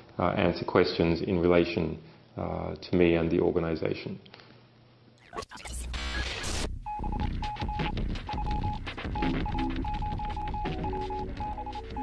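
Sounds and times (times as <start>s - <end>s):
burst of static: 5.2s - 6.9s
electronic beeps: 5.2s - 12.0s.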